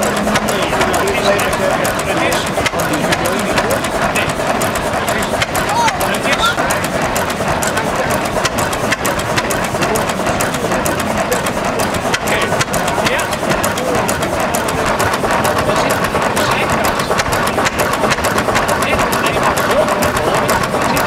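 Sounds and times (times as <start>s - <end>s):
fine mechanical clicking: 0.0s - 21.0s
stationary engine running: 0.0s - 21.0s.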